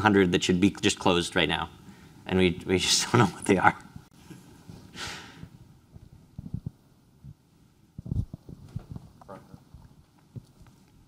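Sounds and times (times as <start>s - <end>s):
short hiss: 4.9s - 5.5s.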